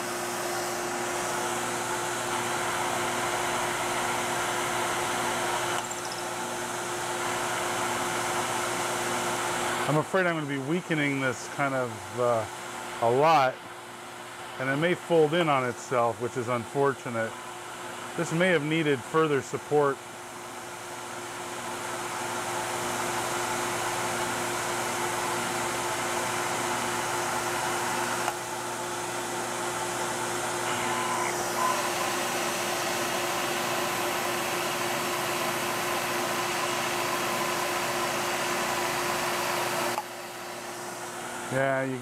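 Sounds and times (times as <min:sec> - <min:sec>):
milling machine cutting metal: 0:30.6 - 0:40.7
spindle hum: 0:30.7 - 0:40.8.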